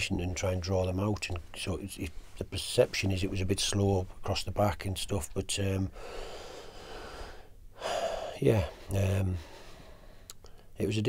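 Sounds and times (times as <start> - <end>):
man breathing: 5.9 - 10.8.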